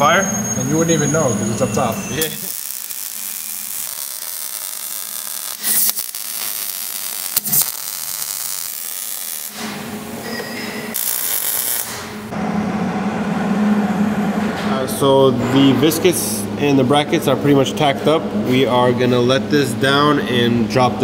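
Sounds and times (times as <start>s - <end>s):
welding arc crackling and hissing: 2.1s - 10.2s, 10.9s - 12.3s.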